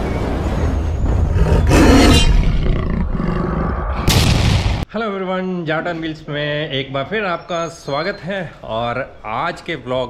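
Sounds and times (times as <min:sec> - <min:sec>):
deep rumble: 0:00.0 - 0:04.8
growling roar: 0:01.3 - 0:04.0.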